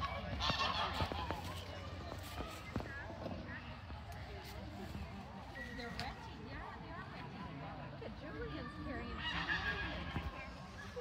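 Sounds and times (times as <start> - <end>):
geese honking: 0.0 - 1.5.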